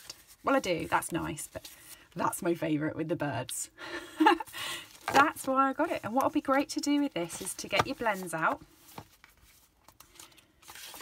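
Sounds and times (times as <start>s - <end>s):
paper rustling and crinkling: 4.4s - 11.0s.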